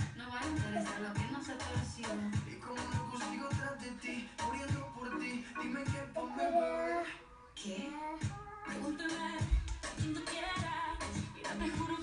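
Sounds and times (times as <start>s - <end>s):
pop song from television: 0.0s - 12.0s.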